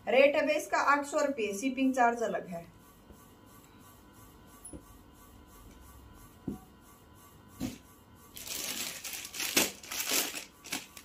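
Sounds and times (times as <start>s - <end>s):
plastic packet crinkling: 8.4s - 11.0s.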